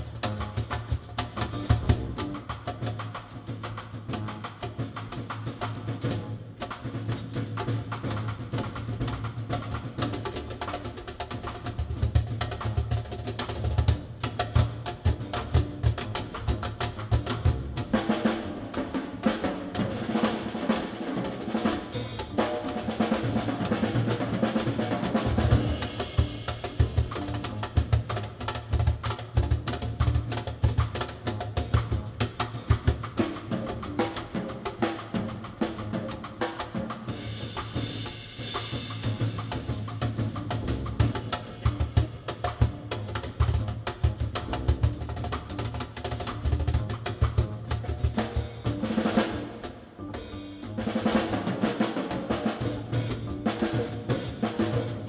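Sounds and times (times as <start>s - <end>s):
drum kit played busily: 0.0s - 55.0s
upright bass: 38.8s - 51.1s, 52.1s - 55.0s.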